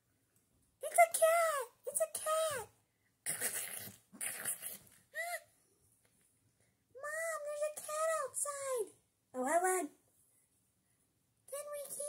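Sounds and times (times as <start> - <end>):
woman snarling and hissing: 3.2 - 5.4.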